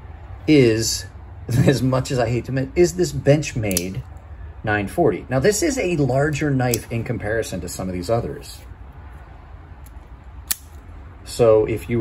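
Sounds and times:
low steady hum: 0.0s - 12.0s
folding knife blade click: 3.7s - 4.0s, 10.5s - 10.8s.

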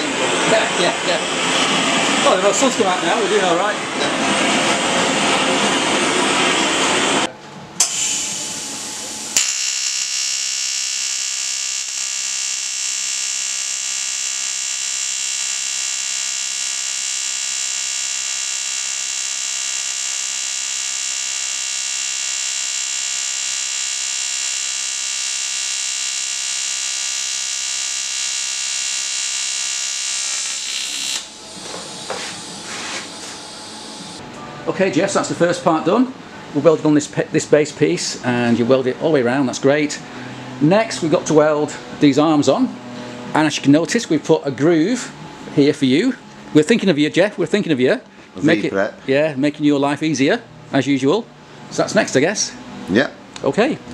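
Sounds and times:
welding arc buzzing: 0.0s - 34.2s
gas torch flame hissing: 7.8s - 10.2s.

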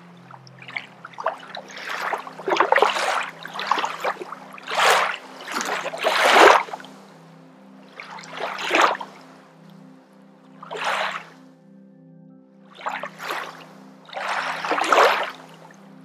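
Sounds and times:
water-like swishing swells: 0.0s - 9.7s, 10.6s - 11.4s, 12.7s - 15.9s
ambient drone music: 0.0s - 16.0s.

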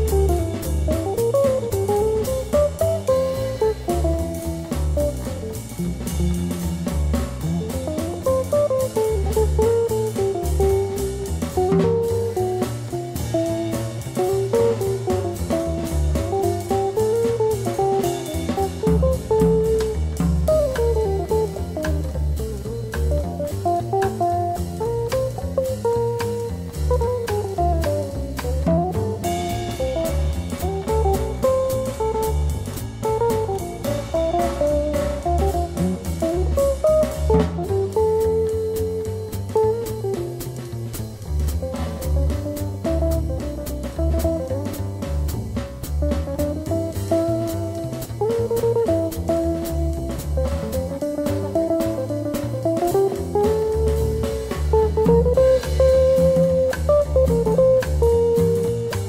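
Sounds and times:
guitar melody: 0.0s - 59.0s
swing band playing: 0.0s - 59.0s.

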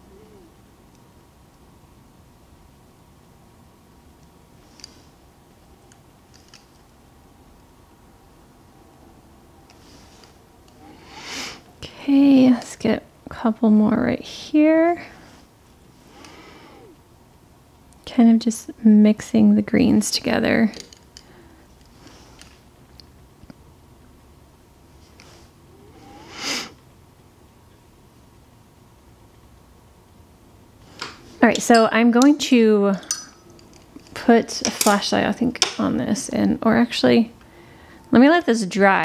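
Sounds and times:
soft breath: 9.8s - 11.7s, 15.0s - 17.0s, 37.4s - 38.1s
person speaking: 31.4s - 33.3s.

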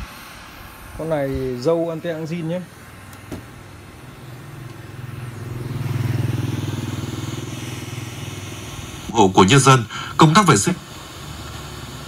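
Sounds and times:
vehicle engine passing by: 3.0s - 9.1s, 10.8s - 12.0s.

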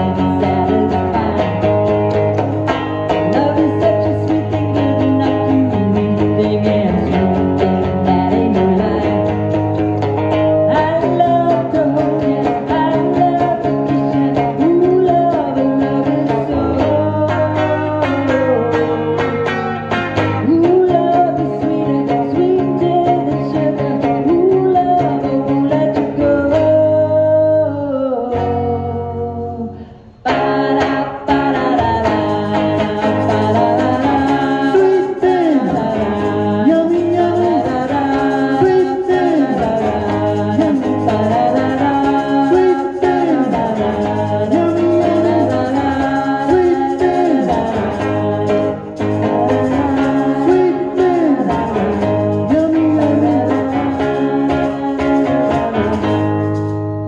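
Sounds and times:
woman singing: 0.0s - 56.8s
amplified electric guitar: 0.0s - 57.0s.

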